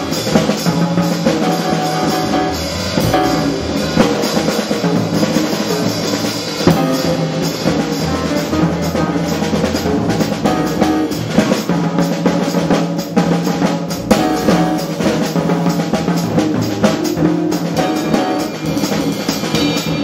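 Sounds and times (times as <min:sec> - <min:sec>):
drum kit: 0:00.0 - 0:20.0
jazz piano trio: 0:00.0 - 0:20.0.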